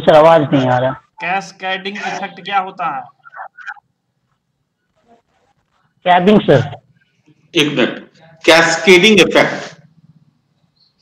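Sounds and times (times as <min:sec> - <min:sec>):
garbled voice over video call: 0:00.0 - 0:03.9, 0:07.6 - 0:09.9.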